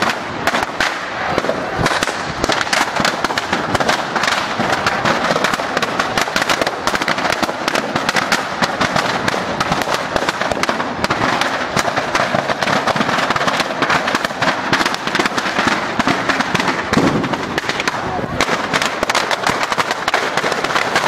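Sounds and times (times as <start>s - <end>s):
firecrackers crackling: 0.0s - 21.0s.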